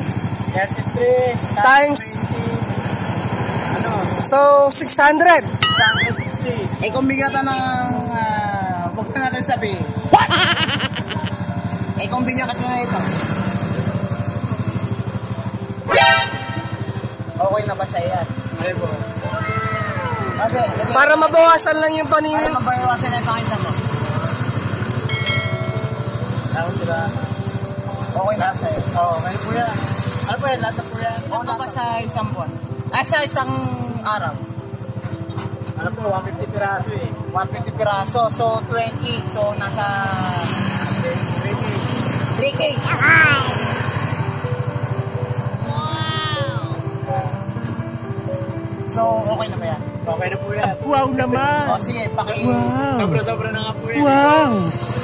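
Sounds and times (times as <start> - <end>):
small motorcycle engine idling: 0.0 - 4.8, 11.4 - 42.8
person speaking: 10.2 - 11.4, 42.8 - 43.7
loud high-pitched honk: 15.9 - 16.8.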